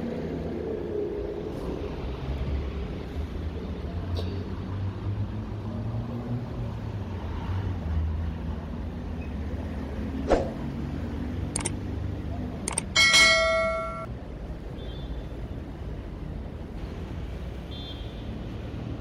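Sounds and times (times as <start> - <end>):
road traffic rumble: 0.0 - 19.0
sharp clicks: 11.5 - 11.8, 12.7 - 13.0
loud metallic clang: 13.0 - 14.1.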